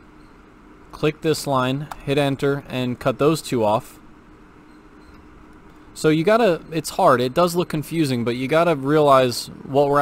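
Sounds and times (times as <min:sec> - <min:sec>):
faint steady tone: 0:00.0 - 0:10.0
low steady hum: 0:00.0 - 0:10.0.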